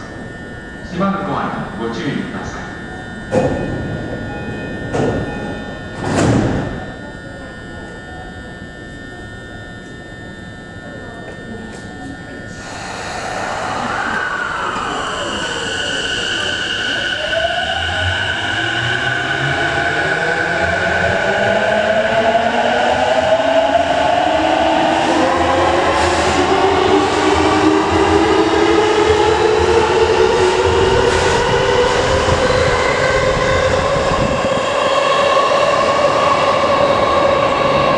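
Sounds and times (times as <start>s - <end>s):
electric train humming: 0.0s - 37.9s
traction motor whine rising in pitch: 12.4s - 37.9s.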